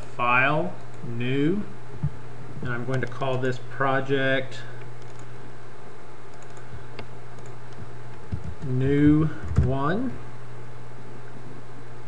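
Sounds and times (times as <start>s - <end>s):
low electrical hum with hiss: 0.0s - 12.0s.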